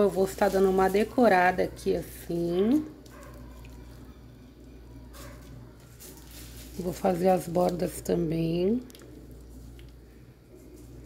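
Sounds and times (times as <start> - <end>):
faint steady low hum: 0.0 - 11.0
soft brushing noises: 5.1 - 7.8, 9.3 - 11.0.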